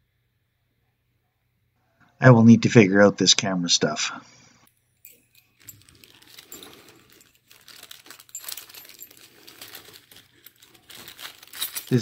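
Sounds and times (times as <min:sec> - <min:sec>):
paper and plastic bags crinkling: 0:05.3 - 0:12.0.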